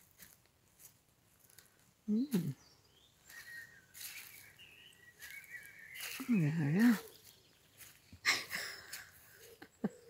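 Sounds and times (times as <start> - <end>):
soft rustling: 0.0 - 2.0, 3.3 - 4.6
faint high bird chirps: 2.1 - 8.2.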